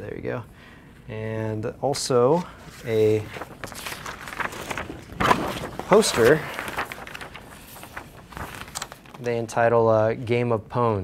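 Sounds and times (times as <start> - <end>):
paper poster rustling: 1.9 - 9.8.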